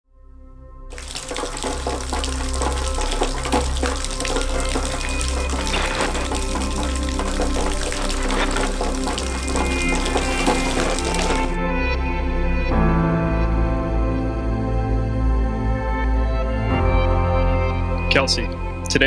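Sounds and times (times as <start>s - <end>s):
background music: 0.4s - 19.0s
rain: 0.9s - 11.6s.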